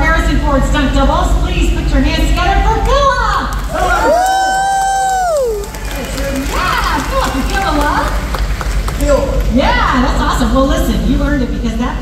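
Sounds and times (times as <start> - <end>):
audience cheering: 3.5 - 9.9
high-pitched cheering whoop: 3.8 - 6.0.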